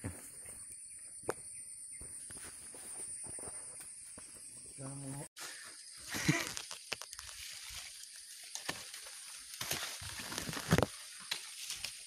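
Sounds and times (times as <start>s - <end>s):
footsteps rustling through brush: 1.9s - 4.5s, 5.5s - 12.0s.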